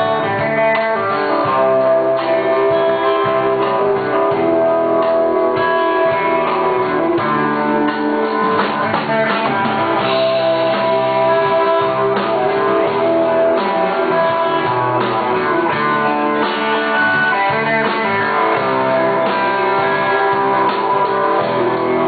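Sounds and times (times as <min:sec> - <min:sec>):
electric guitar: 0:00.0 - 0:22.0
rock band playing live: 0:00.0 - 0:22.0.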